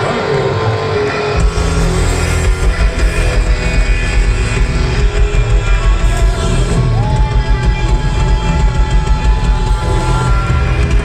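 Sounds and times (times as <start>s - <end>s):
rock band with horns playing: 0.0s - 11.0s.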